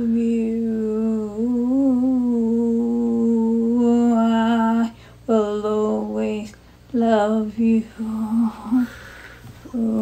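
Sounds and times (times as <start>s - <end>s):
woman singing long note: 0.0s - 9.0s, 9.7s - 10.0s.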